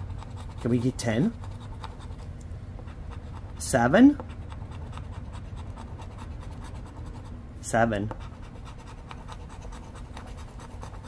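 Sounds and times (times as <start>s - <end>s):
coin scratching lottery ticket: 0.0s - 2.2s, 2.9s - 7.4s, 8.1s - 11.0s.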